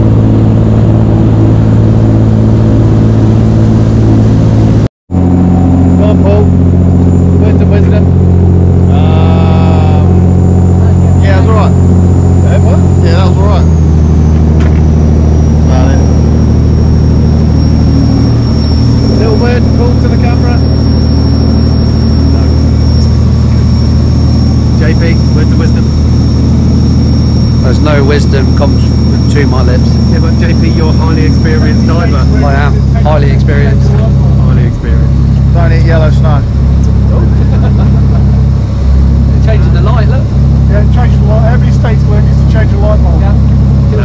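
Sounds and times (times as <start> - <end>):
boat engine droning: 0.0 - 44.0
thin high whine: 0.0 - 44.0.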